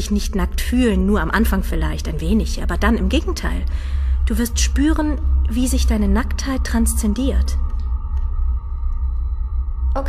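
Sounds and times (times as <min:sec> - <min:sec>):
deep steady drone music: 0:00.0 - 0:10.0.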